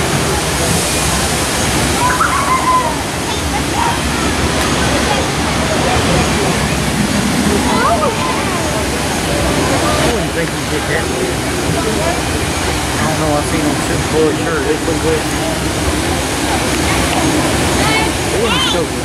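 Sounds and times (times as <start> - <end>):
people chattering: 0.0 - 19.0
water rushing down a chute: 0.0 - 19.0.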